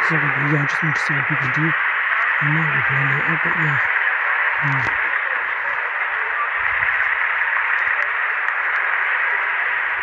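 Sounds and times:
static hiss: 0.0s - 10.0s.

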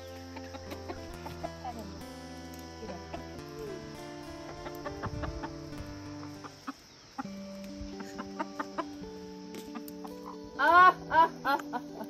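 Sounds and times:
hen clucking: 0.0s - 2.0s, 2.9s - 11.7s
background music of held notes: 0.0s - 12.0s.

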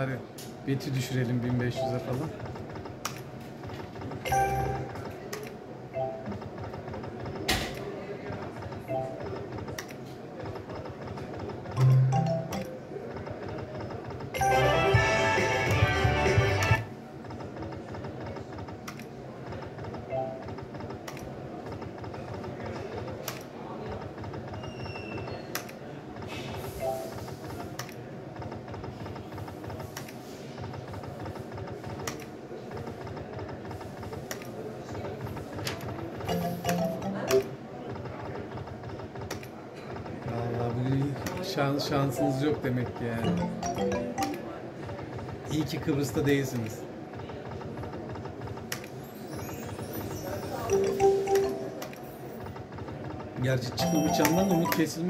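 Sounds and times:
game jingle: 4.3s - 4.9s, 11.8s - 12.7s, 36.3s - 37.6s, 43.2s - 44.6s, 50.7s - 52.3s, 53.8s - 55.0s
looping game tune: 4.3s - 5.0s, 11.8s - 12.8s, 14.4s - 16.8s, 36.3s - 37.7s, 42.2s - 42.6s, 43.2s - 44.7s, 50.7s - 52.2s, 53.8s - 55.0s
spin button clicks: 11.8s - 12.7s, 53.8s - 55.0s
chiming blips: 36.3s - 37.6s, 43.2s - 44.6s, 49.5s - 52.2s, 53.8s - 55.0s.

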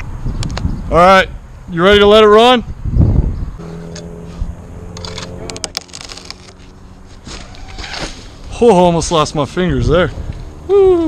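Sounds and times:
rope humming under load: 3.6s - 8.8s.

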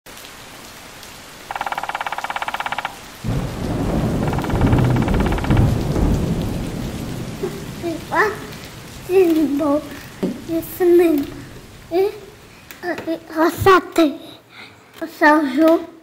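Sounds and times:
steady rain: 0.1s - 15.9s
thunder rumbling: 1.5s - 12.6s.

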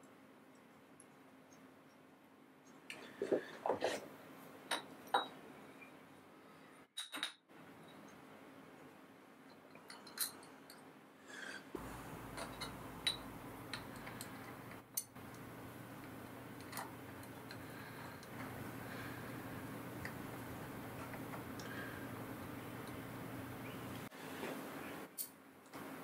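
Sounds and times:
faint steady low hum: 7.5s - 26.0s
small metal clicks and clinks: 9.5s - 10.8s, 25.2s - 25.4s.

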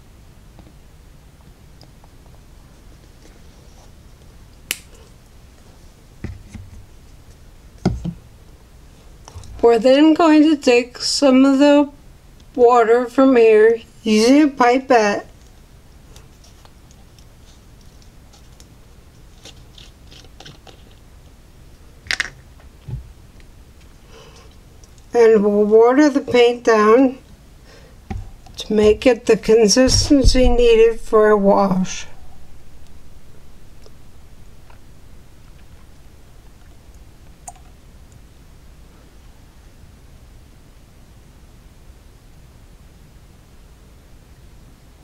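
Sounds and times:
low room hum: 0.0s - 45.0s
soft thump: 28.1s - 29.0s.

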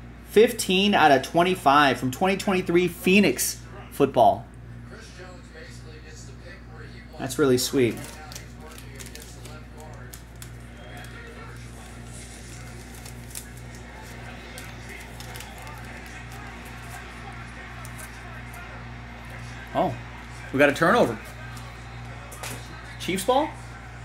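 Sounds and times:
low electrical hum: 0.0s - 24.0s
faint distant voices: 7.8s - 24.0s
cards clicking and tapping: 7.9s - 19.5s.

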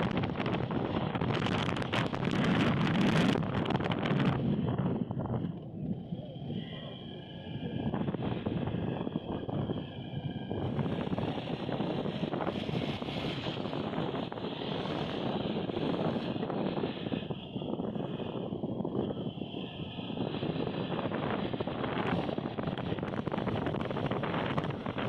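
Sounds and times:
vehicle road and engine noise: 0.0s - 25.0s
wind rush on microphone: 0.0s - 25.0s.

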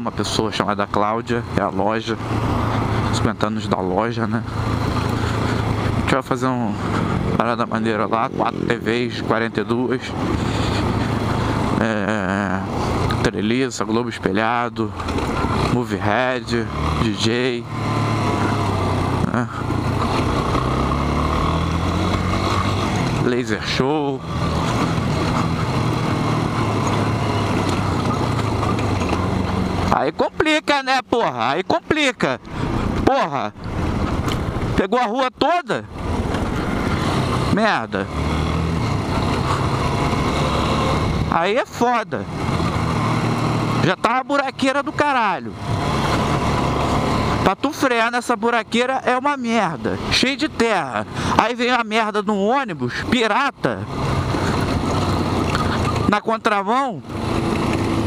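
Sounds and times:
motorcycle engine running: 0.0s - 34.8s, 35.8s - 58.0s.

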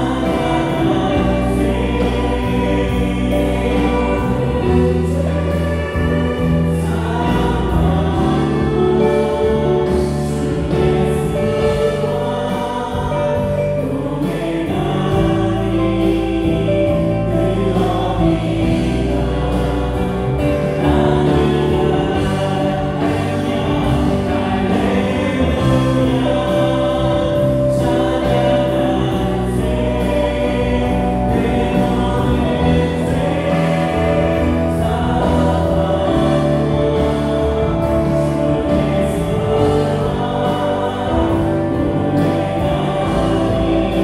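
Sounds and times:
bass guitar: 0.0s - 44.0s
drum kit beat: 0.0s - 44.0s
electric guitar: 0.0s - 44.0s
group of voices singing: 0.0s - 44.0s
keyboards: 0.0s - 44.0s.

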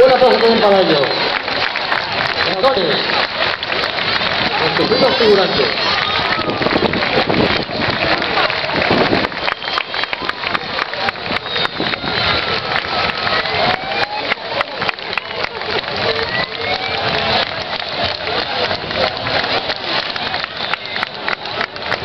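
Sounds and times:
crowd applauding: 0.0s - 22.0s
scattered voices: 0.0s - 22.0s.

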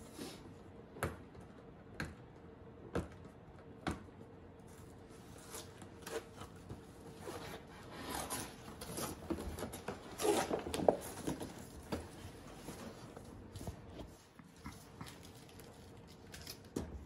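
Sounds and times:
cardboard scraping and rustling: 5.2s - 14.2s
sharp clicks of packaging: 15.1s - 16.8s.

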